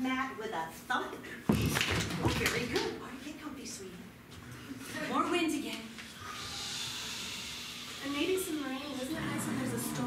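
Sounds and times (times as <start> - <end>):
breathy whooshing hiss: 6.2 - 10.0.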